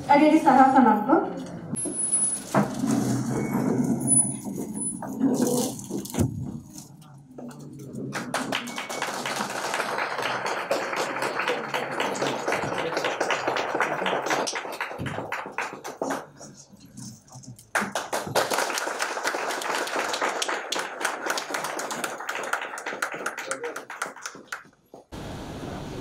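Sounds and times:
audience applauding: 0:08.1 - 0:16.4, 0:17.7 - 0:24.8.

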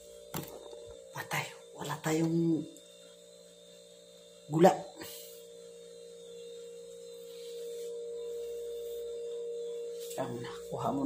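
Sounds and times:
steady hum: 0:00.0 - 0:11.0.

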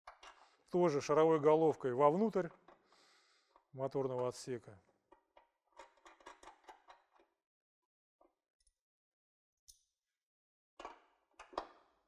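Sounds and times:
small metal clicks: 0:05.1 - 0:07.3.

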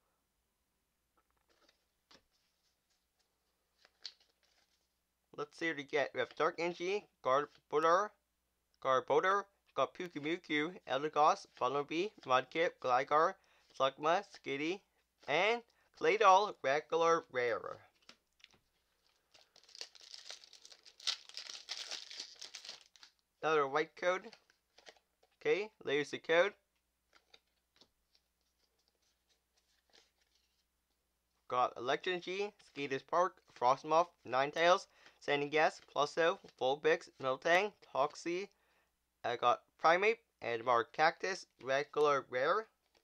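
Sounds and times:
foil wrapper tearing and crinkling: 0:18.4 - 0:23.2.

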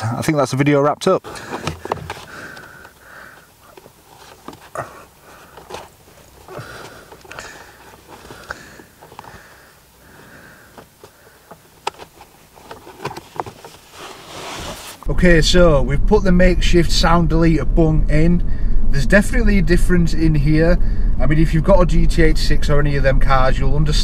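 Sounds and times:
soft breathing through nose: 0:01.3 - 0:11.7.

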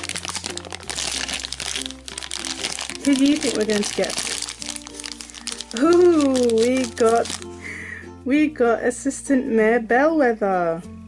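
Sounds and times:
foil wrapper crinkling: 0:00.0 - 0:07.6
soft background music: 0:00.0 - 0:11.0.

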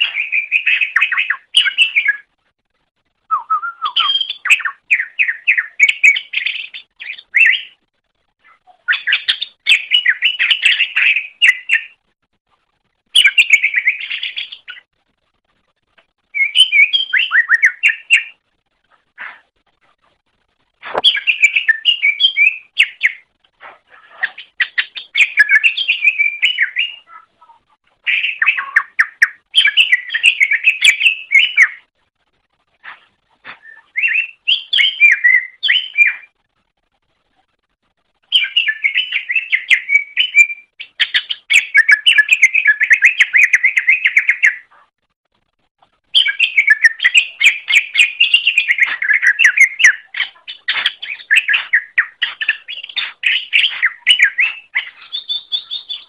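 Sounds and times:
bird singing chattering phrases: 0:46.2 - 0:56.0.

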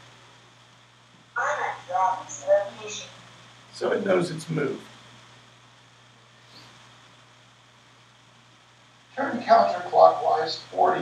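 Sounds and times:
faint hiss: 0:00.0 - 0:11.0.

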